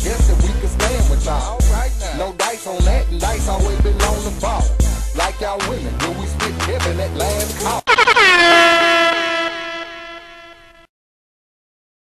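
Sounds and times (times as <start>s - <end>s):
air horn sound effect with echo: 7.9s - 10.9s.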